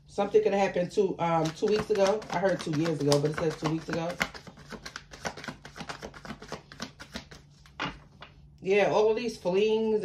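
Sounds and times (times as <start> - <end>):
cards being shuffled: 1.3 - 8.4.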